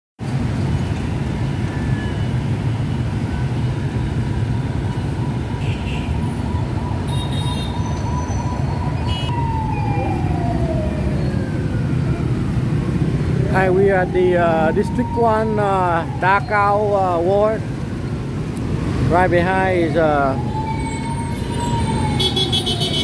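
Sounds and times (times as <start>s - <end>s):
city traffic rumble: 0.2s - 23.0s
high siren-like tone: 4.8s - 18.2s, 19.3s - 23.0s.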